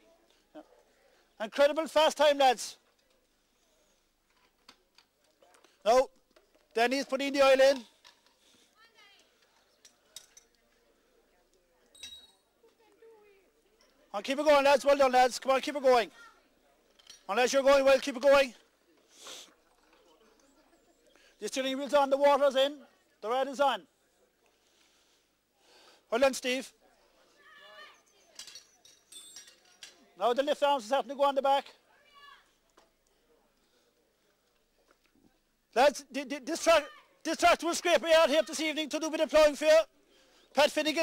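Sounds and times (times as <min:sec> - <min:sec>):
faint voices: 0:08.4 - 0:30.3
faint metallic clinks: 0:11.8 - 0:12.5, 0:16.8 - 0:17.3, 0:28.0 - 0:30.2.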